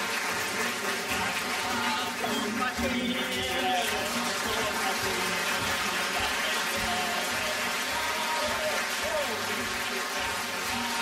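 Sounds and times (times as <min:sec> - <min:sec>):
audience applause: 0:00.0 - 0:11.0
man singing: 0:01.2 - 0:11.0.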